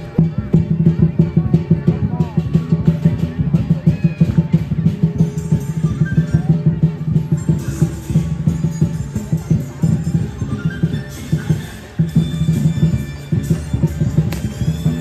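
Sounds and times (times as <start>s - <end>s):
large drum beating: 0.0s - 15.0s
cymbals clashing: 3.6s - 15.0s.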